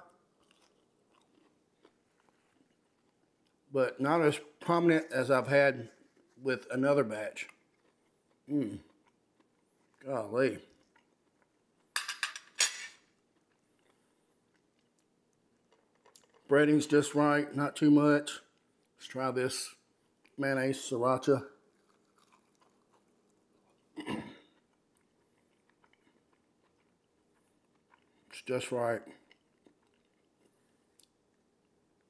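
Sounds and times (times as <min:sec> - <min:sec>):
faint chewing crunches: 0:00.1 - 0:03.7, 0:05.7 - 0:12.0, 0:13.0 - 0:17.0, 0:18.4 - 0:19.1, 0:21.6 - 0:32.0.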